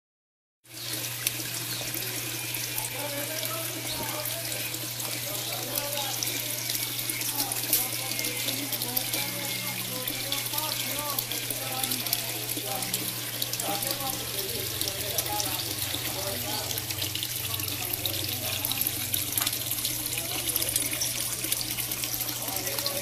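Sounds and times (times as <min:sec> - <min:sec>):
water splashing into fish tank: 0:00.7 - 0:23.0.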